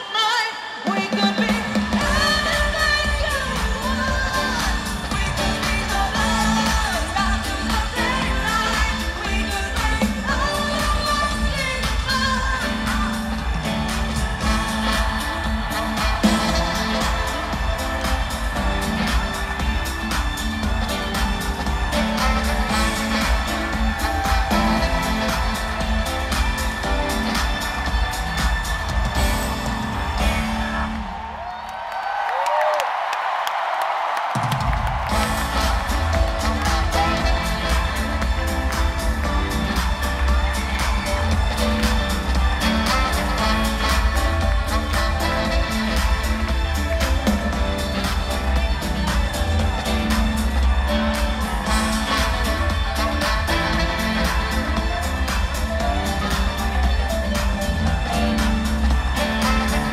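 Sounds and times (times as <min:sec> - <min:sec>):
person singing: 0:00.0 - 0:31.2
crowd cheering and whoops: 0:00.0 - 0:59.9
synth-pop backing with drum beat: 0:00.9 - 0:31.3, 0:34.4 - 0:59.9.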